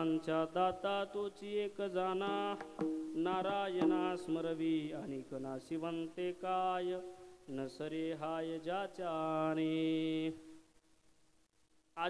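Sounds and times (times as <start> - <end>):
man chanting into a microphone: 0.0 - 10.5.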